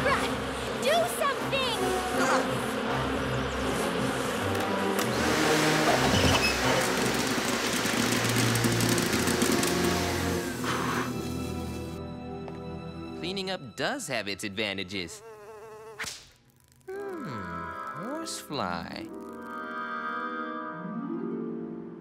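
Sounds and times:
vacuum cleaner running: 0:00.0 - 0:12.0
background music: 0:00.0 - 0:15.1, 0:17.2 - 0:22.0.

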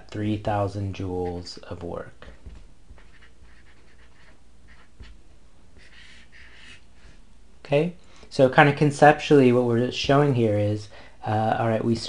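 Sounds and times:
marker scratching on whiteboard: 0:01.0 - 0:01.7, 0:02.3 - 0:07.2
soft thump: 0:02.4 - 0:03.0.

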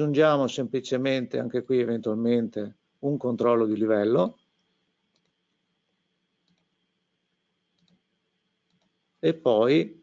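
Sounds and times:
computer mouse clicks: 0:04.6 - 0:05.4, 0:06.4 - 0:06.8, 0:07.7 - 0:09.0.

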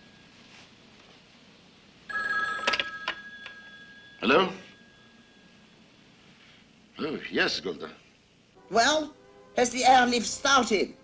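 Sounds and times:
telephone bell ringing: 0:02.1 - 0:05.8.

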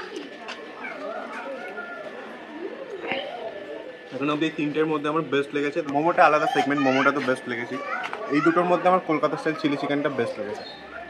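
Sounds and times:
people talking: 0:00.0 - 0:11.0
child's high voice: 0:06.6 - 0:08.6.

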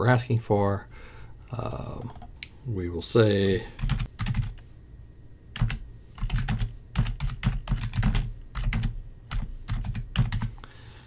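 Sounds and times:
keyboard typing: 0:01.6 - 0:02.3, 0:03.8 - 0:04.6, 0:05.6 - 0:10.6.

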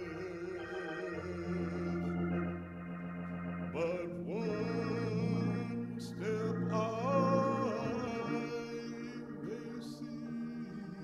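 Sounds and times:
organ playing sustained chords: 0:00.0 - 0:11.0.

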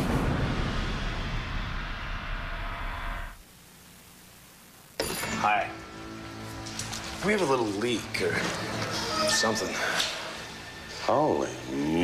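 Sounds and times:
rumbling music and sound effects: 0:00.0 - 0:03.4.

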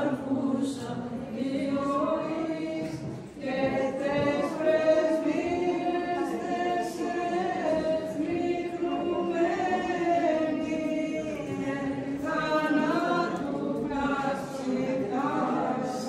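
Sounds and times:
choir chanting a hymn: 0:00.0 - 0:16.0.

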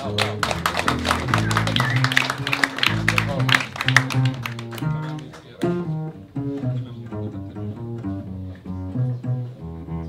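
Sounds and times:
audience applauding: 0:00.0 - 0:05.6
double bass plucking: 0:00.0 - 0:10.0.

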